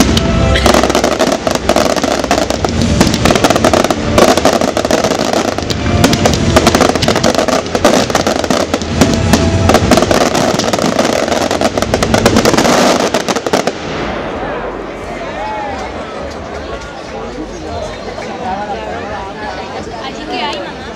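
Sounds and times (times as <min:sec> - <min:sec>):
fireworks bursting and crackling: 0:00.0 - 0:14.7
music playing: 0:00.0 - 0:20.9.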